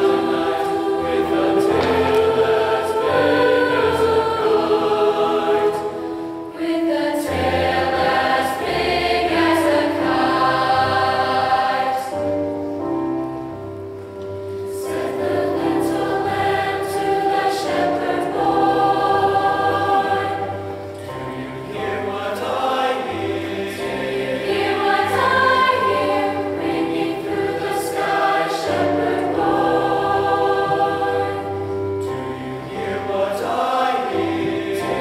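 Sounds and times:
children's choir singing: 0.0s - 35.0s.

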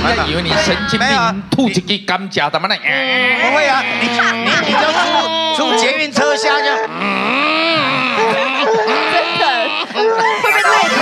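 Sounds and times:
people talking: 0.0s - 6.8s, 7.8s - 11.0s
man humming and vocalising: 6.9s - 11.0s.

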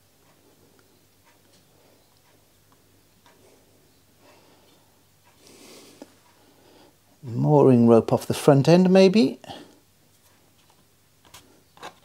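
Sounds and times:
faint regular ticking: 0.0s - 7.4s
low steady hum: 0.0s - 12.0s.

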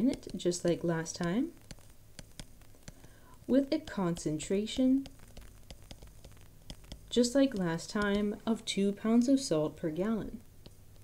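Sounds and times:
low hiss: 0.0s - 11.0s
stylus ticking and scratching: 0.0s - 11.0s.

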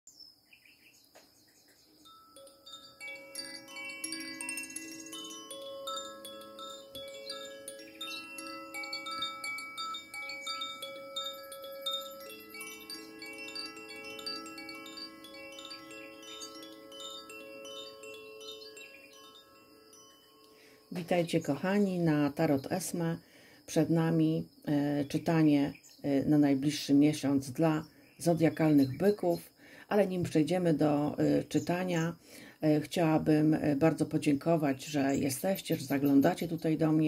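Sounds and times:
wind chimes ringing: 1.9s - 23.2s, 26.2s - 37.0s.

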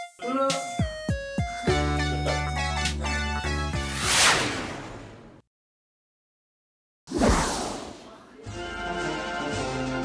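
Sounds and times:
whoosh sound effect: 3.9s - 5.3s, 7.1s - 8.2s.

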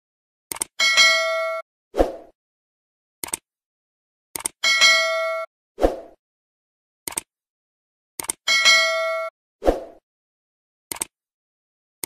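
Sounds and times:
bright bell-like ding: 8.5s - 9.3s.

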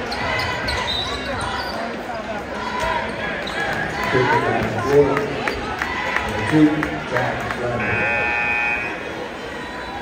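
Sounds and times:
crowd chatter: 0.0s - 10.0s
scoreboard buzzer: 7.8s - 9.1s.

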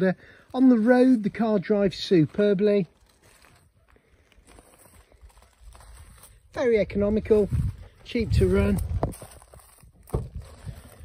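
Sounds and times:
footsteps crunching on gravel: 0.5s - 11.0s.

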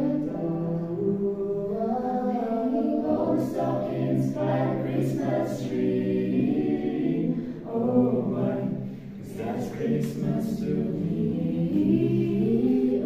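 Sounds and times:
group singing a cappella in harmony: 0.0s - 13.0s.

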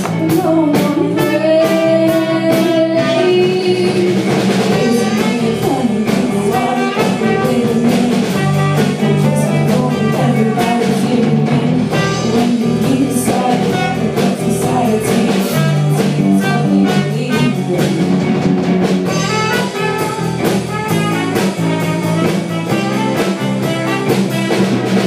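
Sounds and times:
person singing: 0.0s - 18.5s
drum kit beat: 0.0s - 25.0s
electric bass: 0.0s - 25.0s
guitars: 0.0s - 25.0s
trumpet: 1.0s - 4.1s, 4.7s - 11.2s, 11.8s - 17.9s, 19.1s - 25.0s.

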